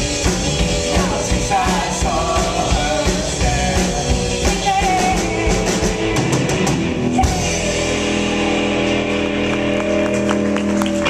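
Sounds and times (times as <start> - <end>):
rock band holding chord: 0.0 - 11.0
audience clapping: 8.4 - 11.0.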